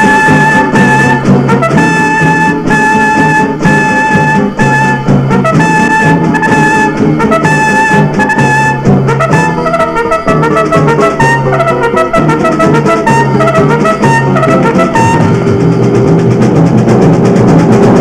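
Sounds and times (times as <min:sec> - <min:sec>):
brass-led orchestral music: 0:00.0 - 0:18.0.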